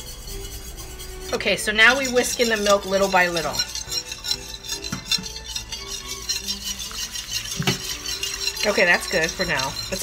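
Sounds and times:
whisk scraping metal pot: 0:00.0 - 0:10.0
whisk knocks on pot: 0:04.8 - 0:05.4, 0:06.9 - 0:10.0.

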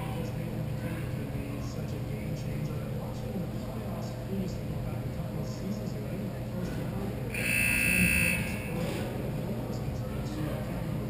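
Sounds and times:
scoreboard buzzer: 0:07.3 - 0:08.8.

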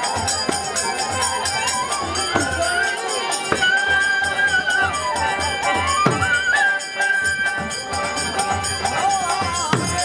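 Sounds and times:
bamboo flute melody: 0:00.0 - 0:10.0
hand percussion beat: 0:00.0 - 0:10.0
khol drum: 0:00.0 - 0:10.0
violin: 0:00.0 - 0:10.0.

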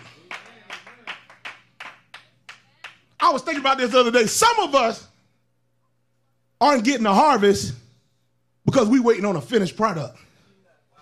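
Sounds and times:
rhythmic hand clapping: 0:00.0 - 0:03.6.

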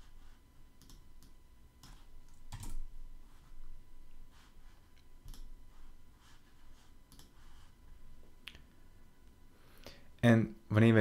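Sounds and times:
computer keyboard keystrokes: 0:00.8 - 0:02.8, 0:05.2 - 0:05.5, 0:07.1 - 0:07.4.

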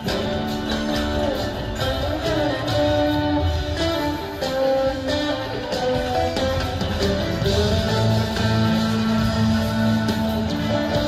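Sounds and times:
guitar melody of held notes: 0:00.0 - 0:11.0
steady drum beat: 0:00.0 - 0:11.0.

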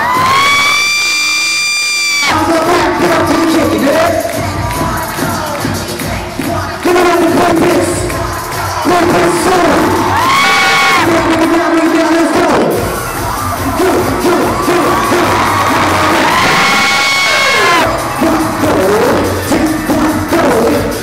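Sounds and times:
crowd cheering: 0:00.0 - 0:21.0
live concert music: 0:00.0 - 0:21.0
fan screaming: 0:12.9 - 0:19.4.

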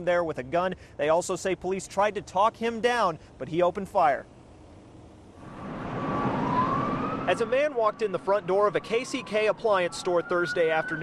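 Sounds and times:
street noise: 0:00.0 - 0:11.0
emergency vehicle siren: 0:05.4 - 0:11.0.

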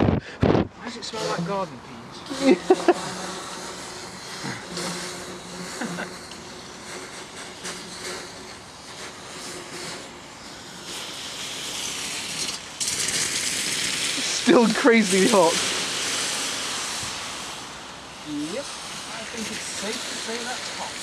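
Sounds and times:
steam hissing from hot pipe: 0:00.1 - 0:21.0.

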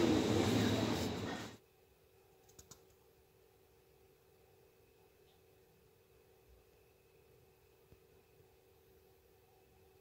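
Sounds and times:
faint clicks: 0:02.4 - 0:03.0.

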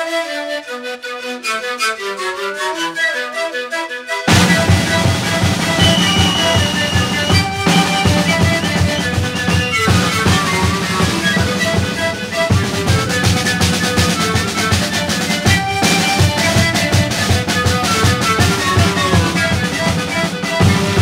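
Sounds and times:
panpipes playing melody: 0:00.0 - 0:21.0
bass drums beating: 0:04.3 - 0:18.0
snare drum: 0:04.3 - 0:21.0.

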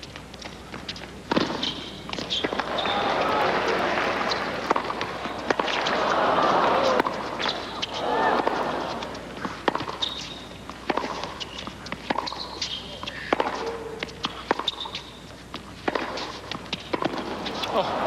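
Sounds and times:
shoes squeaking on hard court: 0:00.0 - 0:03.2, 0:04.3 - 0:06.2, 0:06.8 - 0:17.8
tennis ball struck by racquets: 0:01.3 - 0:17.7.

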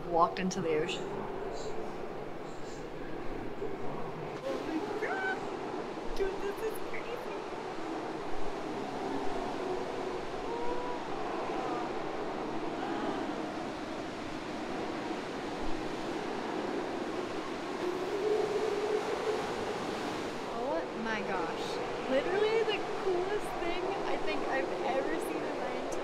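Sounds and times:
surf churning in sea cave: 0:00.0 - 0:26.0
sea lions calling: 0:07.7 - 0:14.2, 0:17.1 - 0:25.4.

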